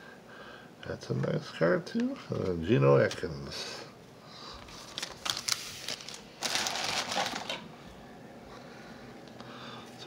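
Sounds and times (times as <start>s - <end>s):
cards sliding and rustling: 4.8s - 6.1s.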